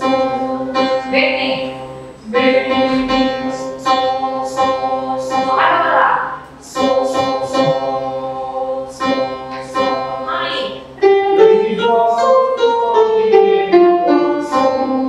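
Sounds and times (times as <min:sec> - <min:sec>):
electronic keyboard: 0:00.0 - 0:15.0
voices singing in unison: 0:00.0 - 0:15.0.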